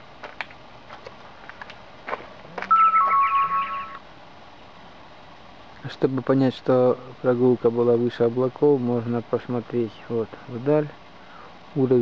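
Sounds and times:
two-note electronic chime: 2.7s - 4.0s.

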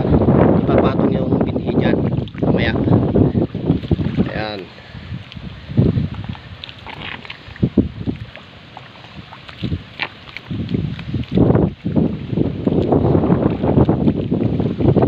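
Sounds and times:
wind buffeting microphone: 0.0s - 15.0s
sloshing in wet mud: 1.9s - 15.0s.

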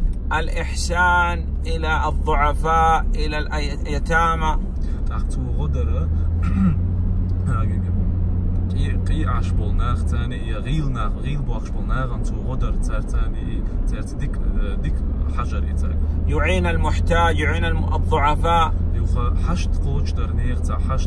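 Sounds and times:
car engine drone: 0.0s - 21.0s
road noise: 0.0s - 21.0s.

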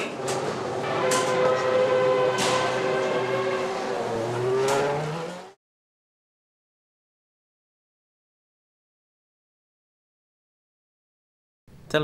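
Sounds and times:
racing car engine running: 0.0s - 5.6s
sharp bangs: 0.2s - 5.3s.

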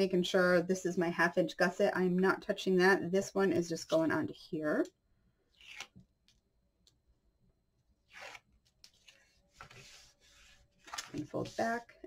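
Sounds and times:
cardstock being folded and smoothed: 8.1s - 12.0s.

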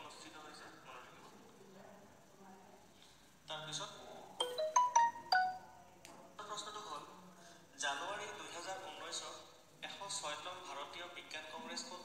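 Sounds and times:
electronic ringtone jingle: 4.4s - 5.8s.

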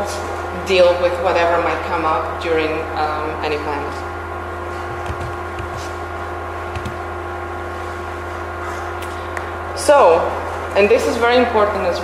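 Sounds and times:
electrical hum: 0.0s - 12.0s.

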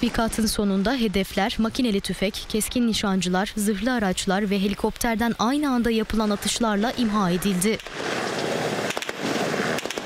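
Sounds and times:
gunfire barrage: 7.8s - 10.0s
sharp gunshot cracks: 7.8s - 10.0s.

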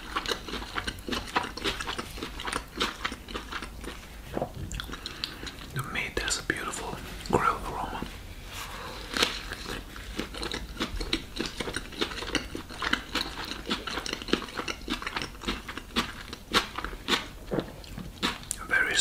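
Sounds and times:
chewing with wet mouth clicks: 0.0s - 5.9s, 9.1s - 18.7s.

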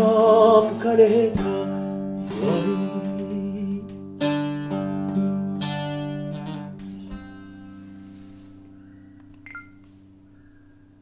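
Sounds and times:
acoustic guitar chord ringing: 0.0s - 10.8s
short high squeak: 6.8s - 7.3s
click: 9.2s - 10.0s.

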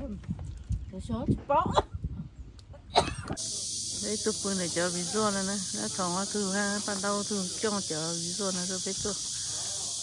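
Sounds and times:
high-pitched insect chorus: 3.3s - 10.0s.

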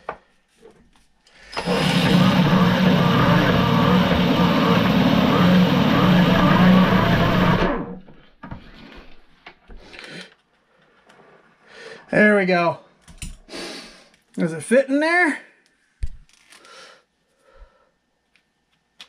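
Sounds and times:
cordless drill running: 1.5s - 8.0s
metal grinding against grinding wheel: 1.5s - 8.1s
faint handling sounds: 15.6s - 17.4s.

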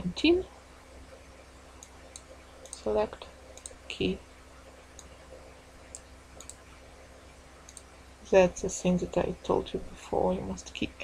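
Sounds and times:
faint low hum: 0.0s - 11.0s
computer mouse clicks: 1.8s - 2.9s, 3.5s - 3.8s, 5.0s - 6.6s, 7.7s - 7.9s.

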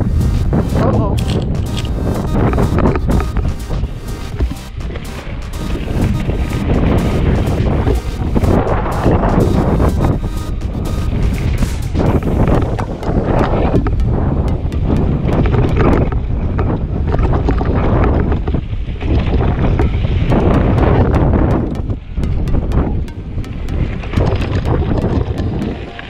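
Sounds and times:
wind buffeting microphone: 0.0s - 4.5s, 6.6s - 25.9s.

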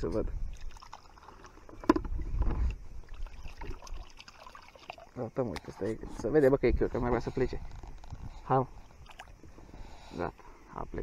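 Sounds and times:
water splashing into pond: 0.4s - 5.8s, 8.9s - 9.4s
water sloshing in plastic bucket: 0.5s - 6.4s.

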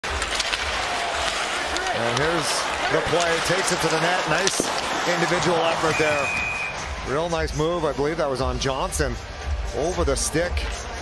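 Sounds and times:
arena crowd hum: 0.0s - 11.0s.

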